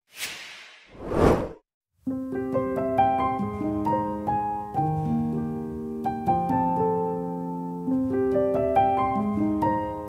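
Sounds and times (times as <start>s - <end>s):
hissing whoosh: 0.2s - 1.6s.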